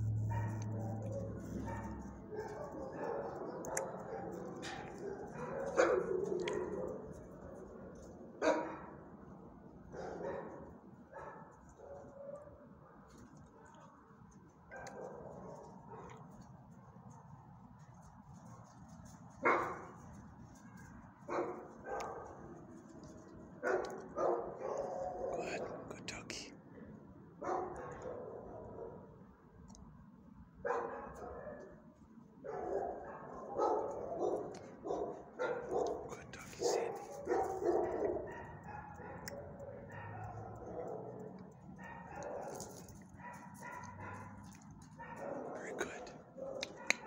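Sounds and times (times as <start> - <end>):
dogs barking: 0.0 - 7.4, 8.4 - 8.9, 9.9 - 12.6, 14.7 - 16.3, 19.4 - 20.0, 21.3 - 22.6, 23.6 - 26.2, 27.4 - 29.1, 30.6 - 31.7, 32.4 - 47.0.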